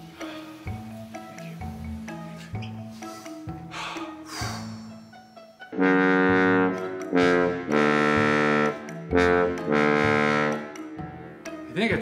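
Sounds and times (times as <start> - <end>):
bass trombone held notes: 5.8 - 10.7.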